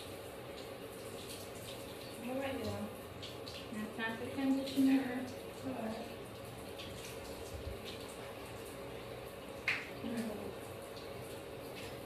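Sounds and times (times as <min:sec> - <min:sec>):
faint water splashing in bathtub: 0:00.0 - 0:12.0.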